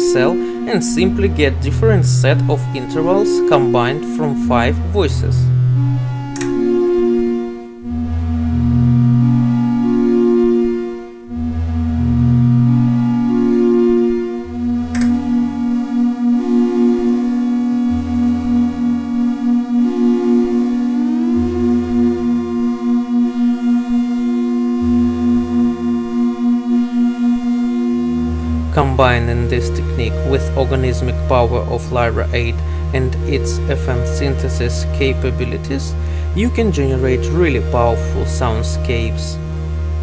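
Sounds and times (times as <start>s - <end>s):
synthesizer drone with delay: 0.0s - 40.0s.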